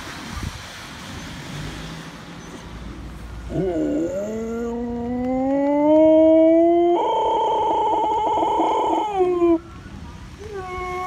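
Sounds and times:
husky howling: 3.5s - 9.6s.

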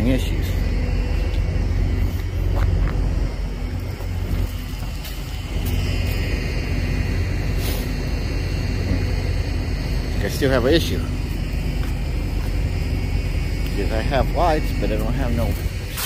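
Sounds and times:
vehicle idling rumble: 0.0s - 16.0s.

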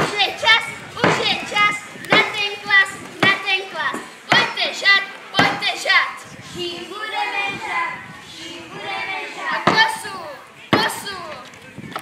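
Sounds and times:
children speaking and calling: 0.0s - 12.0s.

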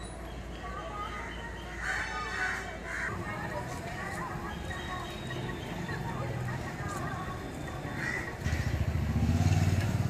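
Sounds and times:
vehicle engine passing by: 8.0s - 10.0s.

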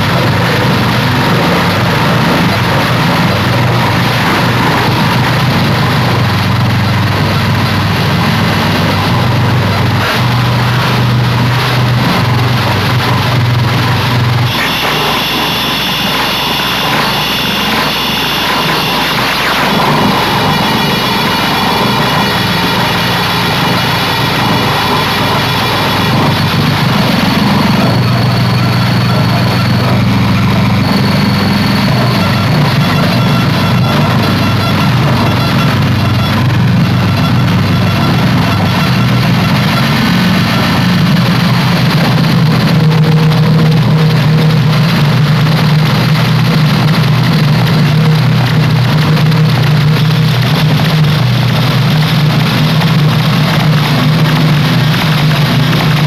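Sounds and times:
dense noise texture: 0.0s - 56.0s
low droning hum: 0.0s - 56.0s
high whistling tones: 14.5s - 41.6s.

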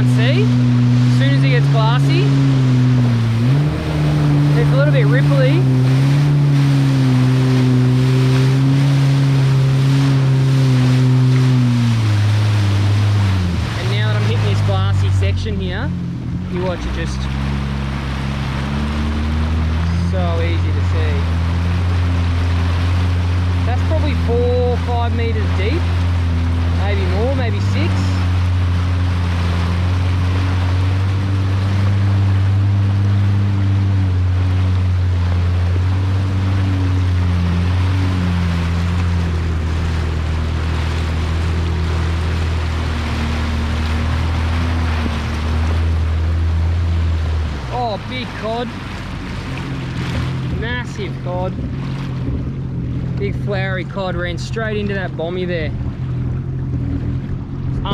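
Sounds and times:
jet ski engine cruising: 0.0s - 57.9s
water hissing along hull: 16.4s - 55.5s.

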